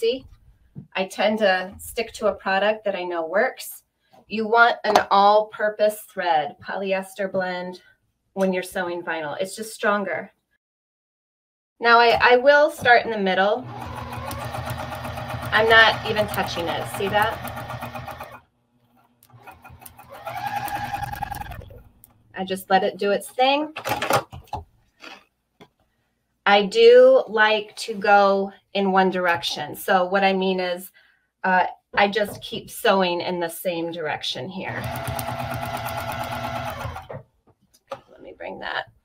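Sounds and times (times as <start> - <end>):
sewing machine stitching: 13.5 - 18.4, 19.3 - 22.1, 34.7 - 37.2.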